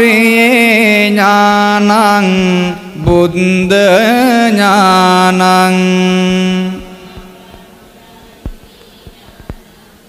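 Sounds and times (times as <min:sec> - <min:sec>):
man chanting: 0:00.0 - 0:07.8.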